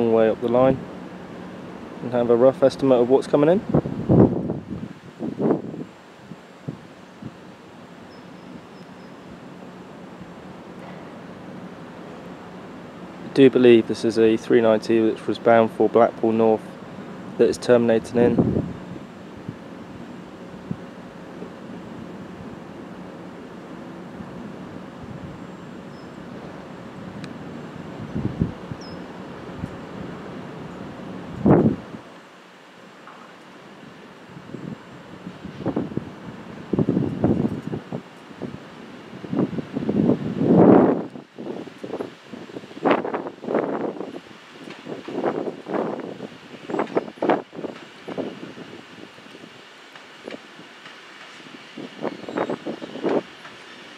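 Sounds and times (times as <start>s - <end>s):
wind gusting on microphone: 0.0s - 32.2s, 33.8s - 53.9s.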